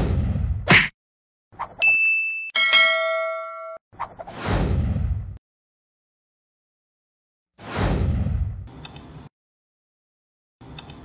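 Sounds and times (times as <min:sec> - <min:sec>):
bell chime ringing: 0:01.8 - 0:03.8
short high ding: 0:01.8 - 0:03.8
click: 0:08.8 - 0:09.2, 0:10.7 - 0:11.0.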